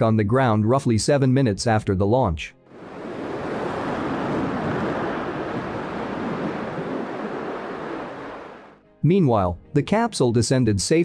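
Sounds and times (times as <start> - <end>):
rocket engine rushing: 2.8 - 8.8.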